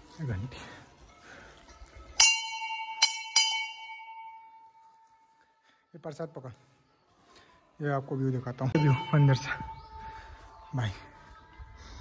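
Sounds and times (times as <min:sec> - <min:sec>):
metal temple bell ringing: 0:02.2 - 0:04.7, 0:08.8 - 0:10.0.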